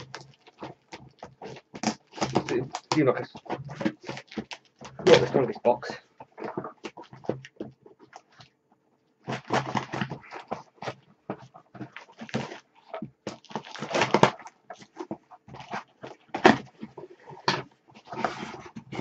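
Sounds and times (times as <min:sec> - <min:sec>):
cardboard parcel being opened: 0:00.0 - 0:08.5, 0:09.2 - 0:19.0.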